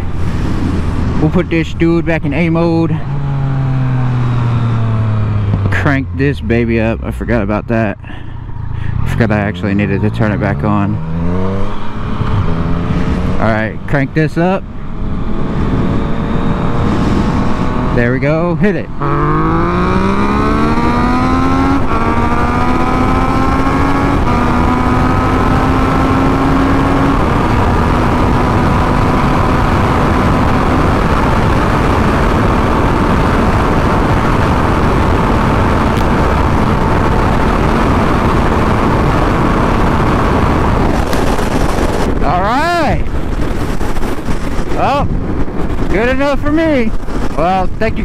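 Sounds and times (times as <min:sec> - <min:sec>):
wind noise on microphone: 0:00.0 - 0:05.8, 0:08.6 - 0:13.4, 0:14.6 - 0:18.0, 0:18.8 - 0:48.0
motorcycle engine accelerating: 0:00.0 - 0:48.0.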